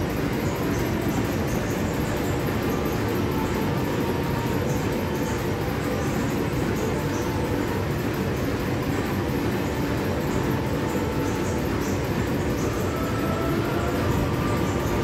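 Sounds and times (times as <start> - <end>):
stationary engine rumble and clatter: 0.0 - 15.0.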